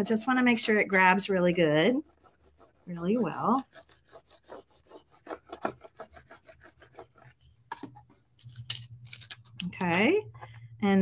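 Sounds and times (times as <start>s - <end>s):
plastic squeegee rubbing on tape: 0.0s - 9.6s.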